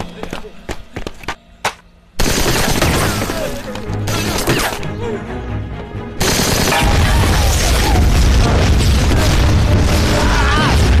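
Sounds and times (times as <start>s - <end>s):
film music score: 0.0s - 11.0s
explosions rumbling: 6.8s - 11.0s.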